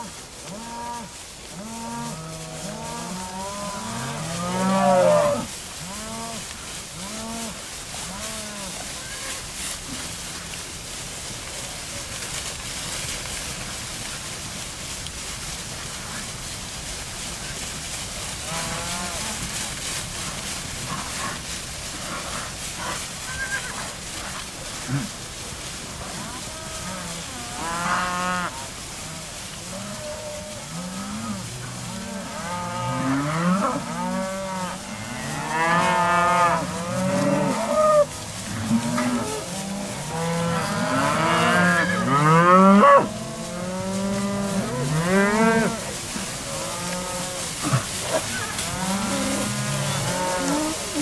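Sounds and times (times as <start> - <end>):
cattle mooing: 46.5 - 51.0.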